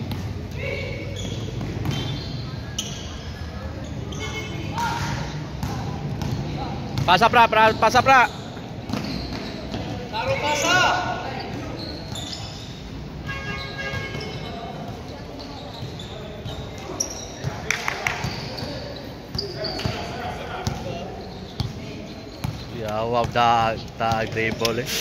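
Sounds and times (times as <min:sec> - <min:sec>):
basketball bouncing on court: 0:00.0 - 0:03.1, 0:04.1 - 0:10.4, 0:13.3 - 0:24.7
players' voices: 0:00.0 - 0:25.0.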